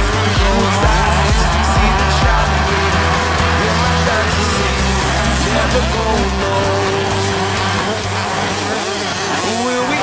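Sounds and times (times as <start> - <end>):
motocross bike engines revving: 0.0 - 10.0
music with deep bass: 0.0 - 10.0.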